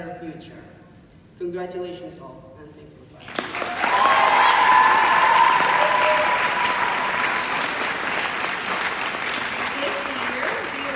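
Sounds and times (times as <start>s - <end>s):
audience applauding: 3.2s - 10.9s.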